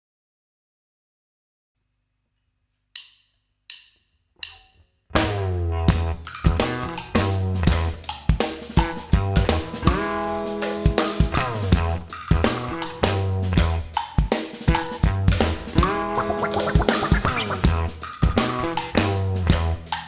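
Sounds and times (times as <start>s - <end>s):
funky guitar groove: 5.2s - 8.2s, 14.7s - 19.8s
drum kit: 5.2s - 20.0s
heavy bass line: 15.6s - 18.0s.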